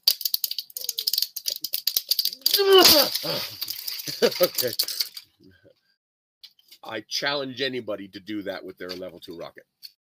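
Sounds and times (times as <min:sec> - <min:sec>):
plastic tube crackling as crushed: 0:00.0 - 0:05.2.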